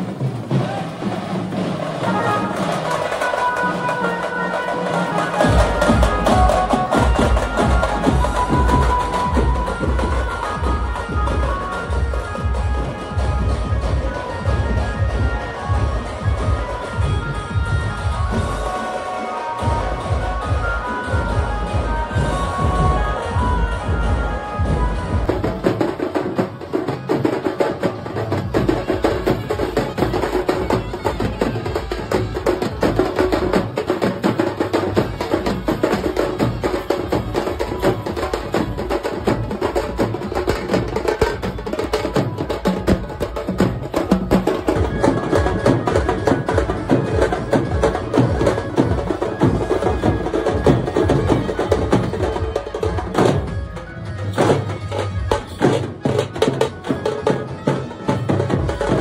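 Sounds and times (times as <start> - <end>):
drum band playing fast rhythm: 0.0 - 59.0.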